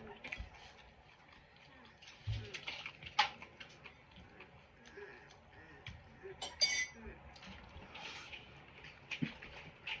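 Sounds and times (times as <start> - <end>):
ceramic plate clinking: 6.4 - 7.0.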